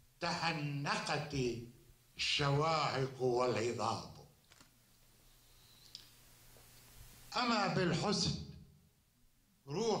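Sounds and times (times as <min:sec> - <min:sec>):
faint click: 0:05.8 - 0:06.1.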